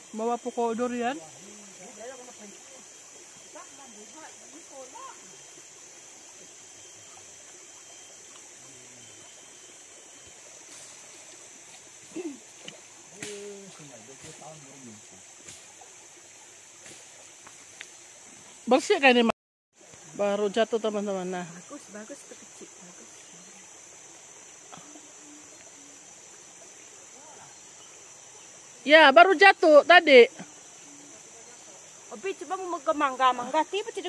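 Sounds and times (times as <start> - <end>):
insects droning: 0.0 - 34.0.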